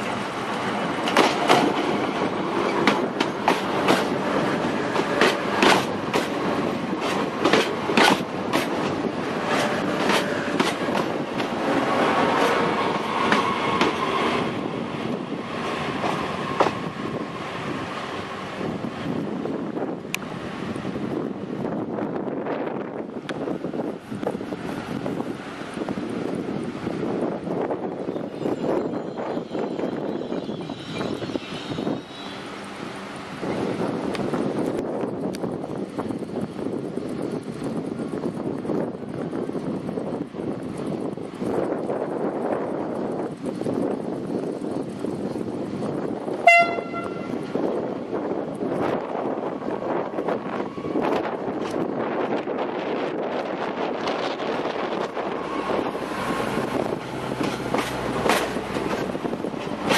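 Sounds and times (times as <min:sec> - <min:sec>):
train passing: 0:00.0 - 0:59.9
train wheel squeal: 0:12.3 - 0:14.6, 0:27.8 - 0:32.7.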